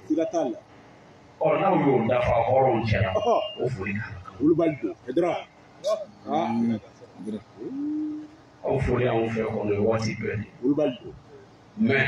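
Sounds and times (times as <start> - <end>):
man preaching: 1.4 - 8.0, 8.6 - 12.0.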